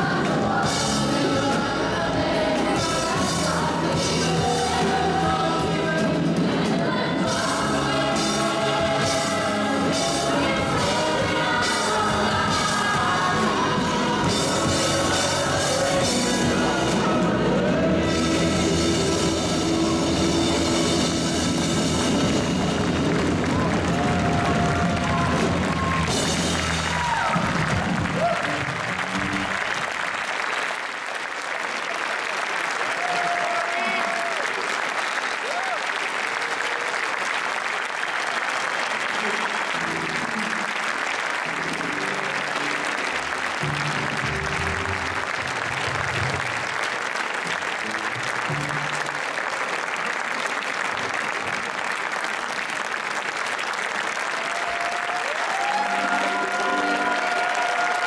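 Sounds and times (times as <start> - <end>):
audience applauding: 6.6 - 58.0.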